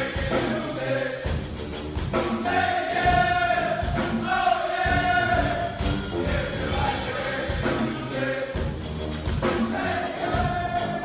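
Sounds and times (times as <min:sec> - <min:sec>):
brass ensemble playing: 0:00.0 - 0:11.0.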